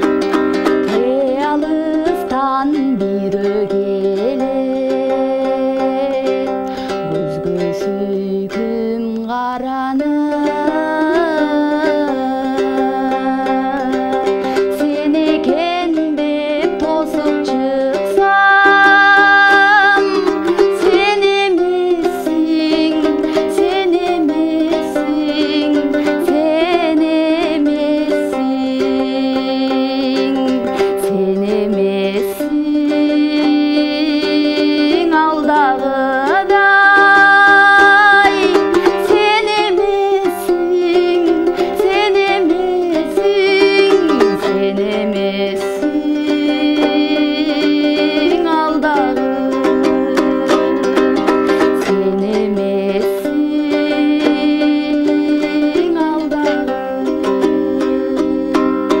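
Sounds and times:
strummed lute: 0.0 - 59.0
woman singing: 0.0 - 59.0.

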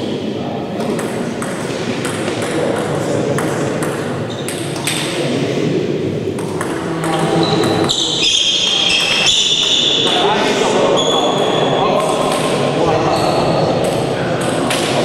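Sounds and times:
murmur of voices: 0.0 - 15.0.

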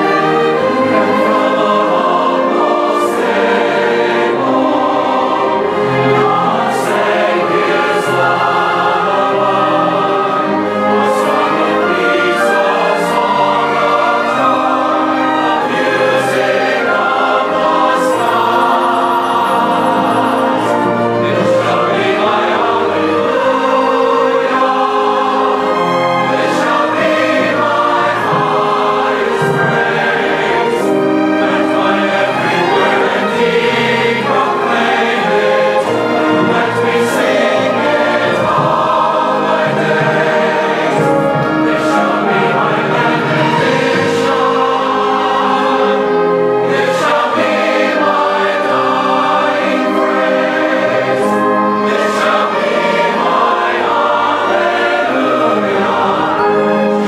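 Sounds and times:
choir singing a hymn: 0.0 - 57.0
orchestra accompaniment: 0.0 - 57.0.

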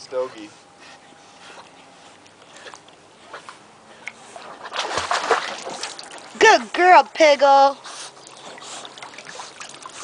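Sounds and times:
faint water sounds: 0.0 - 10.0
dog breathing: 0.1 - 4.5.

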